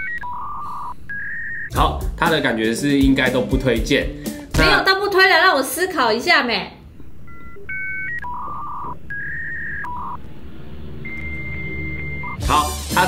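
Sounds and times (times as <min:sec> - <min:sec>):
electronic beep tune: 0:07.3 - 0:10.2, 0:10.9 - 0:12.6.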